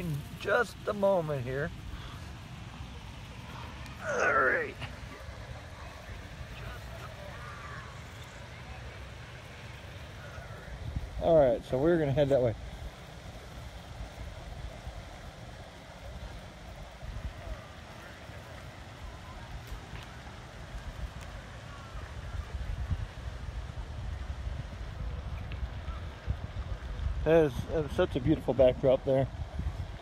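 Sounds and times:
wind buffeting microphone: 0:00.0 - 0:30.0.

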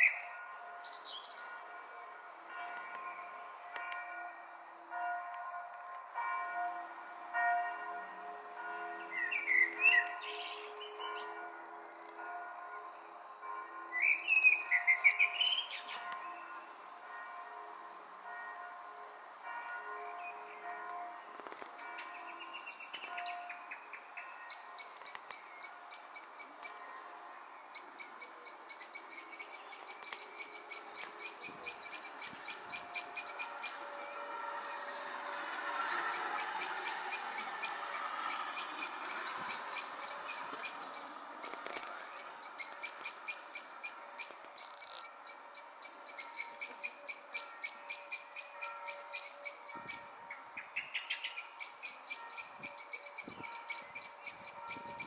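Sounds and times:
bells ringing: 0:00.0 - 0:50.6, 0:51.3 - 0:55.0
bird calls: 0:08.6 - 0:11.4.

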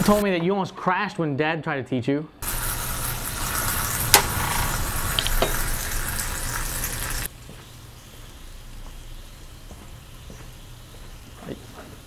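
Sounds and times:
sauce sizzling in a pot: 0:02.4 - 0:12.0.

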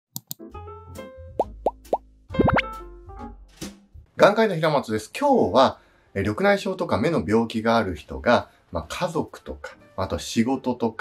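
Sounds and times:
rising bloop pops: 0:01.4 - 0:02.7.

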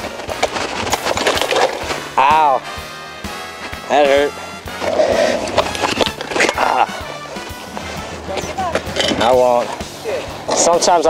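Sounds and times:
scooter rolling over asphalt: 0:00.0 - 0:02.6, 0:03.6 - 0:11.0
scooter clattering onto pavement: 0:05.4 - 0:11.0.

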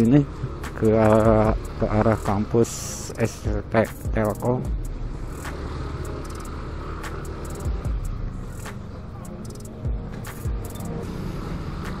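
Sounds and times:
low bumps: 0:00.0 - 0:12.0
road rumble: 0:00.0 - 0:12.0
scooter engine running: 0:00.0 - 0:12.0.

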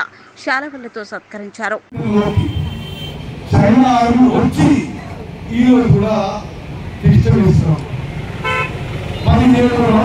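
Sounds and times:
man speaking over loudspeaker: 0:01.9 - 0:02.7, 0:03.5 - 0:08.0, 0:09.2 - 0:10.0
vehicle horn toot: 0:02.2 - 0:03.3, 0:08.4 - 0:09.4.

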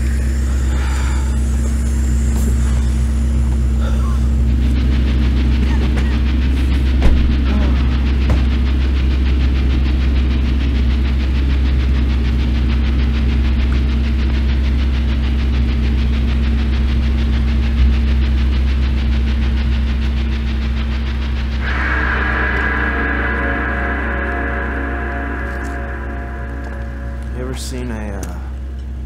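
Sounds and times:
vehicle engine and road noise: 0:00.0 - 0:29.0.

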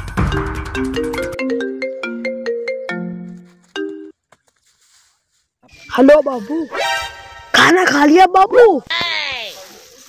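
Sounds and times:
marimba-like phone ringtone: 0:00.2 - 0:04.2.

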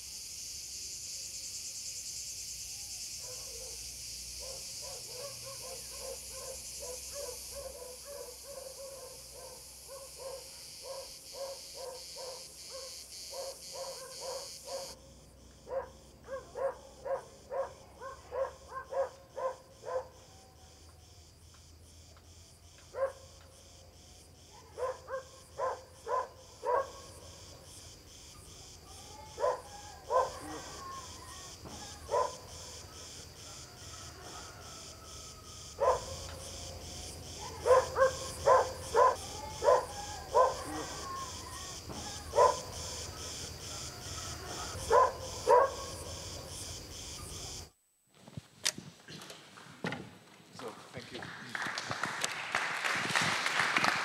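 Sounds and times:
dog barking: 0:03.2 - 0:03.8, 0:04.4 - 0:15.0, 0:15.6 - 0:20.4, 0:22.9 - 0:23.3, 0:24.6 - 0:27.2, 0:29.0 - 0:31.1, 0:31.7 - 0:34.8, 0:35.8 - 0:36.4, 0:37.4 - 0:46.1.

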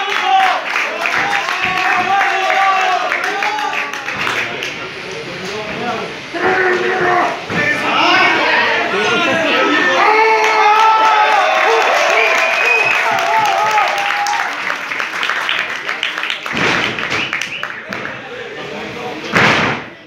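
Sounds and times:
spectators shouting: 0:00.0 - 0:04.0, 0:06.4 - 0:15.0
heavy thud on wrestling ring: 0:19.3 - 0:19.9.

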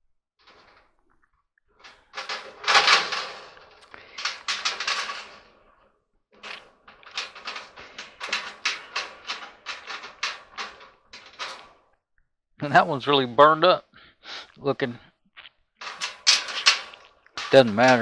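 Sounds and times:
wire rattling against sheet metal: 0:00.4 - 0:01.0, 0:01.8 - 0:05.8, 0:06.4 - 0:11.9, 0:15.8 - 0:18.0.

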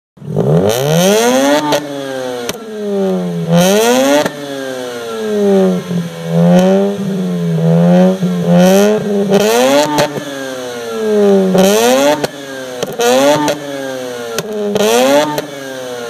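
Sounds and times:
rotary engine revving: 0:00.2 - 0:16.0.

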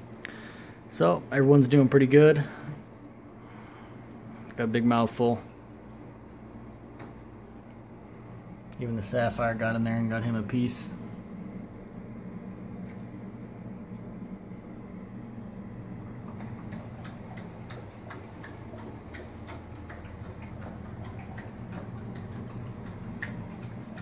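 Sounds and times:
low mechanical hum: 0:00.0 - 0:24.0.

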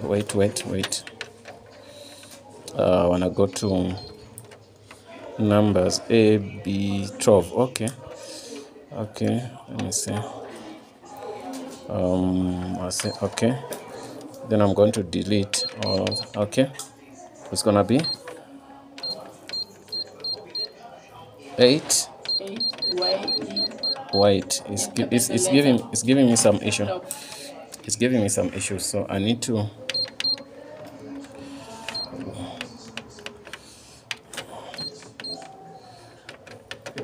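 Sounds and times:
control panel beeps: 0:15.5 - 0:16.4, 0:18.0 - 0:18.2, 0:19.0 - 0:20.8, 0:22.2 - 0:24.2, 0:29.9 - 0:30.5, 0:31.9 - 0:32.1, 0:34.8 - 0:35.5
key press clicks: 0:19.0 - 0:20.7, 0:22.2 - 0:24.5, 0:29.9 - 0:30.5.

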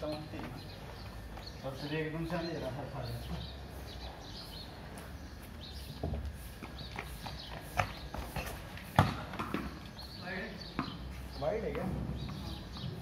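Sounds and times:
ball striking bat and paving: 0:07.8 - 0:09.9.

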